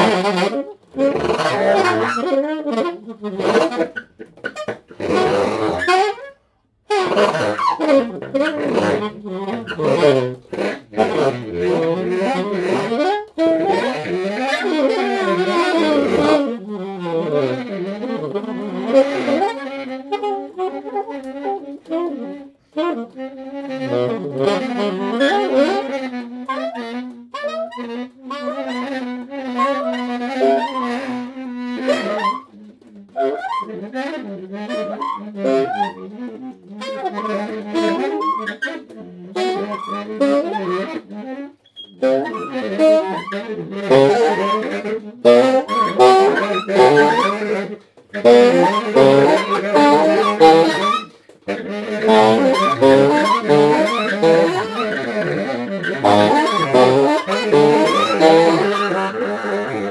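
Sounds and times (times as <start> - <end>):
saxophones playing: 0.0 - 59.9.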